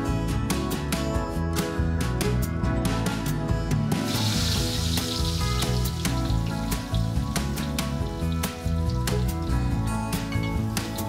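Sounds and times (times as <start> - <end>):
background music with steady beat: 0.0 - 11.0
leaves sizzling in hot oil: 4.0 - 11.0.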